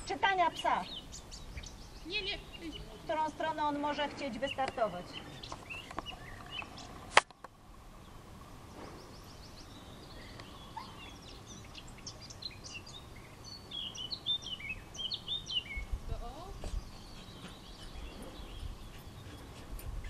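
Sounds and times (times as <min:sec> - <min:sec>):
songbirds chirping: 0:00.0 - 0:20.0.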